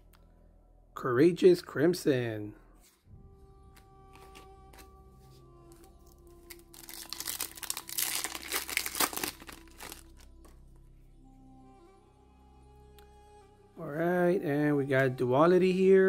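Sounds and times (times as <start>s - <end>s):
soft background music: 0.0s - 16.0s
foil pack tearing and crinkling: 6.5s - 10.2s.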